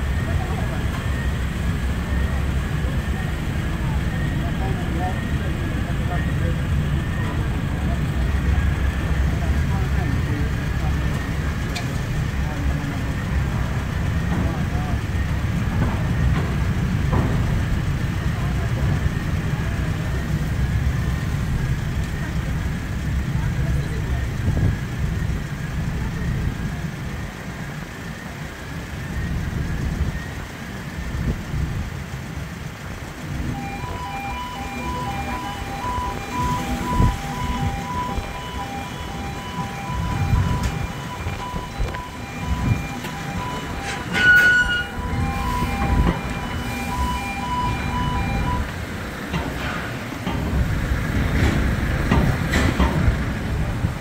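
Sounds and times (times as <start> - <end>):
ship engines rumbling: 0.0 - 54.0
electronic warning beeper: 33.4 - 48.7.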